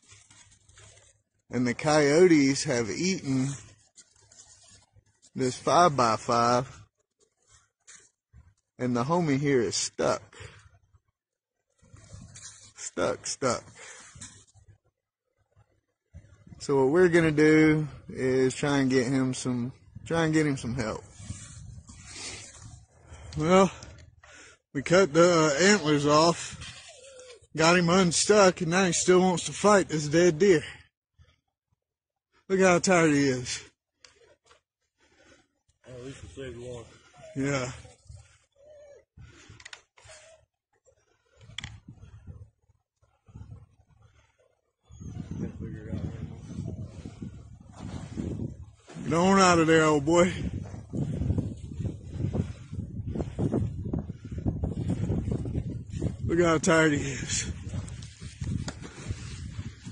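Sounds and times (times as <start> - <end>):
man calling out: 24.8 - 26.5
low rumble on microphone: 50.3 - 56.3.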